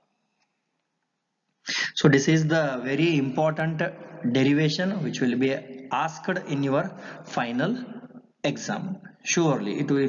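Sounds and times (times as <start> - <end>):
man's sharp breath: 1.7 - 2.0, 7.0 - 7.3
man speaking: 1.7 - 7.9, 8.5 - 10.0.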